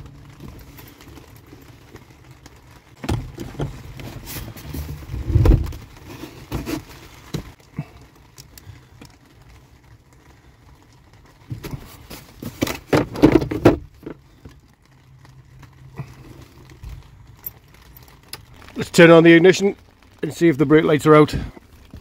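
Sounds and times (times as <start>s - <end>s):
knocks and rattles of handling parts: 11.5s - 14.6s.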